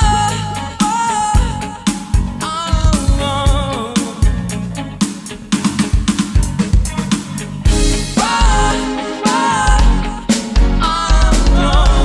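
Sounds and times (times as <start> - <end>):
bass and band backing: 0.0 - 12.0
electronic drum kit groove: 0.0 - 12.0.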